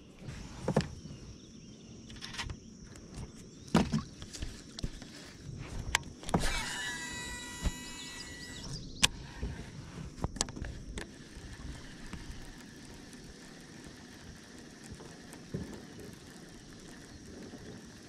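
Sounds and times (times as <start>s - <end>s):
fishing reel clicks: 6.2s - 9.2s, 10.4s - 18.0s
high ringing tone: 6.4s - 9.0s.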